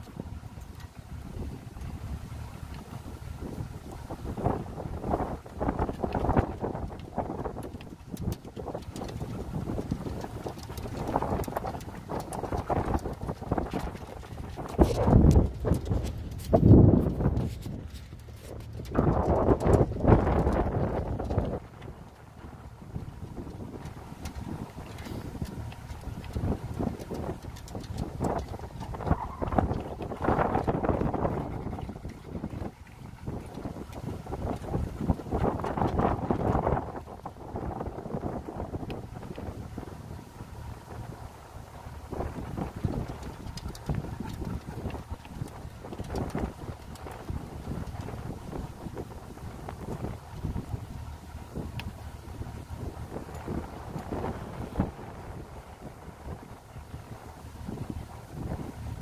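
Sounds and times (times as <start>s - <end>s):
boat motor hum: 0.0s - 59.0s
wind buffeting microphone: 0.0s - 59.0s.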